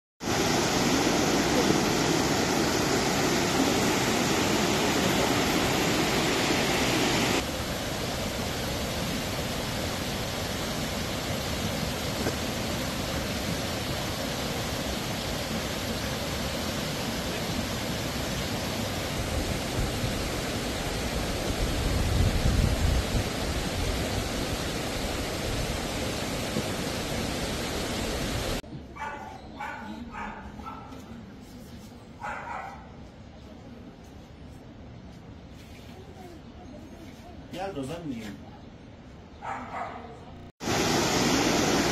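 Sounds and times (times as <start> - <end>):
flood torrent rushing: 0.2 - 28.6, 40.6 - 41.9
dog barking: 29.0 - 31.1, 32.2 - 33.0, 39.4 - 40.3.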